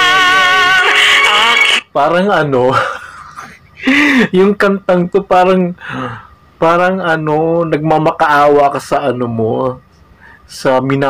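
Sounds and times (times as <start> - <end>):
woman singing with vibrato: 0.0 - 1.9.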